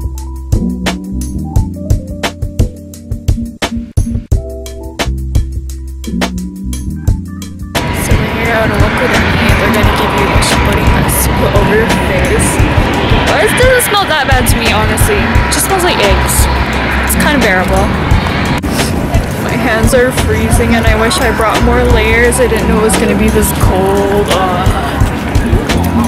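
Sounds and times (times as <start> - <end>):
background music: 0.0 - 26.0
voices: 7.8 - 26.0
wind buffeting microphone: 7.8 - 26.0.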